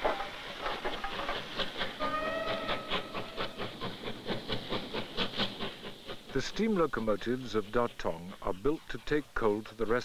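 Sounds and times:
steam locomotive chuffing: 0.0 - 10.0
steam locomotive whistle: 2.0 - 3.5.

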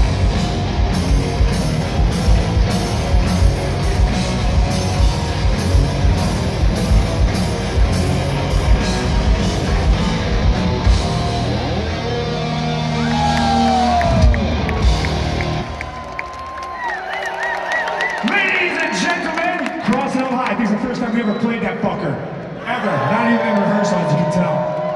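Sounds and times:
heavy metal band playing: 0.0 - 16.0
crowd cheering and whistling: 10.5 - 24.9.

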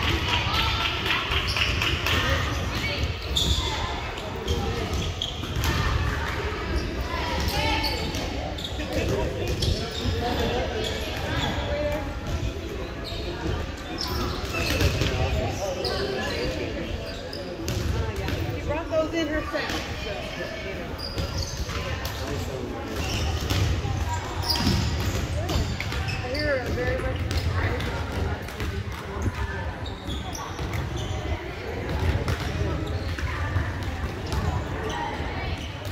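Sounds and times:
chatter of many voices: 0.0 - 35.9.

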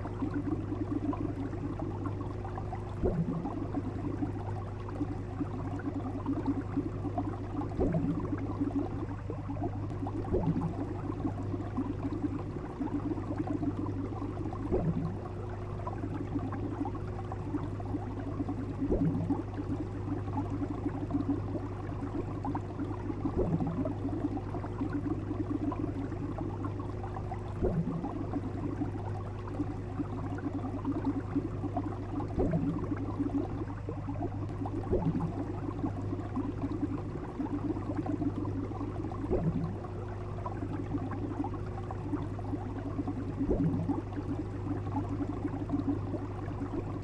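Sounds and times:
aquarium bubbles burbling: 0.0 - 47.0
low hum: 0.0 - 47.0
louder bubble blip: 3.0 - 3.5, 7.8 - 8.3, 9.9 - 10.8, 14.7 - 15.2, 27.6 - 28.0, 32.2 - 32.9, 34.4 - 35.4, 39.2 - 39.8.

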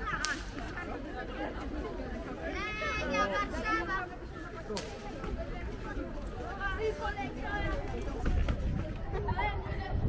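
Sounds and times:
passersby talking: 0.0 - 10.0
sharp snap: 0.2 - 0.5.

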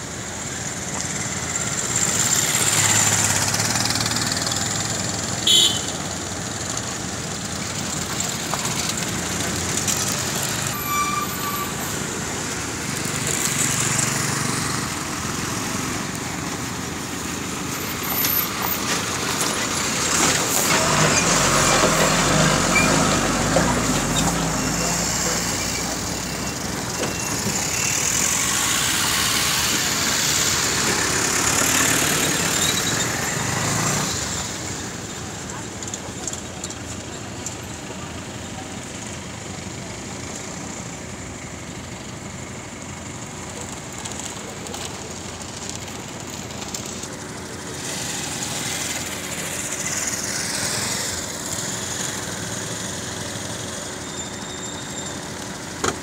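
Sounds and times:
vehicles passing on a road: 0.0 - 56.0.

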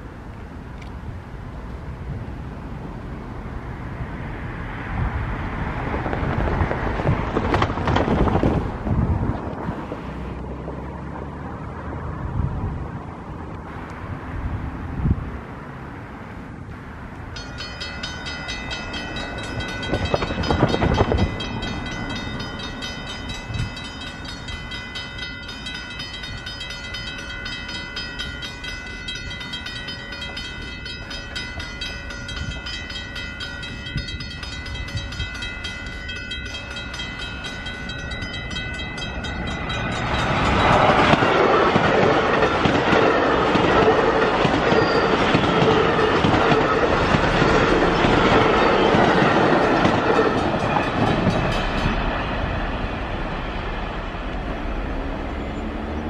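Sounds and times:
train wheel and rail noise: 0.0 - 56.0
electric train whine: 13.6 - 56.0.

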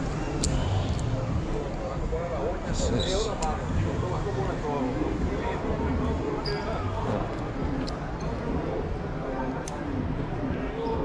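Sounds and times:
indistinct voices talking: 0.0 - 11.0.

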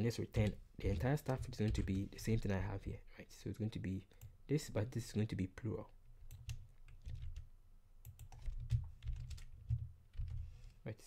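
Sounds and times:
keyboard typing: 0.4 - 2.0, 6.2 - 10.7.

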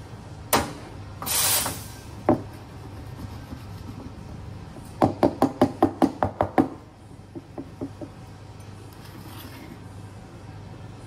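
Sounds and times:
hard knocks at espresso bar: 2.2 - 2.5, 5.0 - 8.2.

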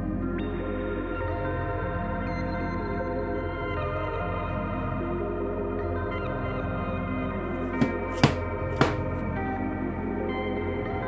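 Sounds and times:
mallet striking chisel through leather: 7.7 - 9.2.

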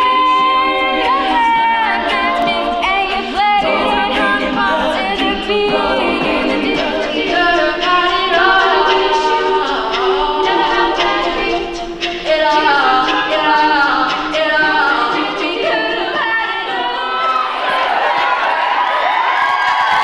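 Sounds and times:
women singing a cappella harmony: 0.0 - 17.6.

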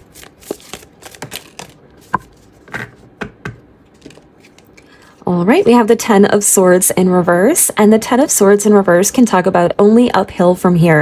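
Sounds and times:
cards shuffling: 0.0 - 3.0, 3.9 - 4.9.

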